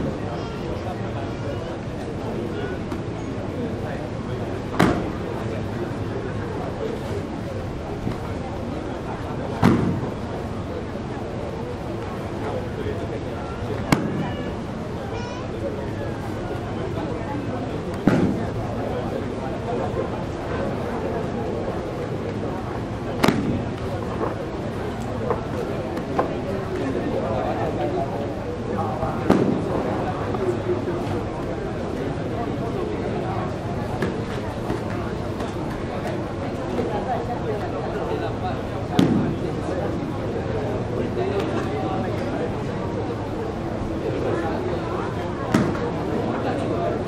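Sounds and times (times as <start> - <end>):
audience talking in hall: 0.0 - 47.0.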